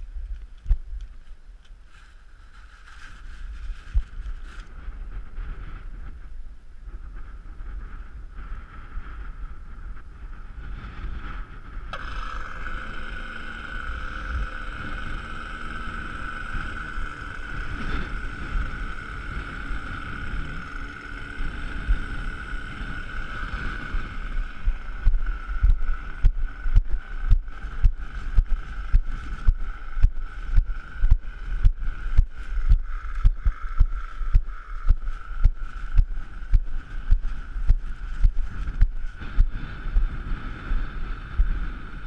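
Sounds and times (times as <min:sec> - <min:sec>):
steady high whine: 0:00.0 - 0:42.0
wind buffeting microphone: 0:00.0 - 0:42.0.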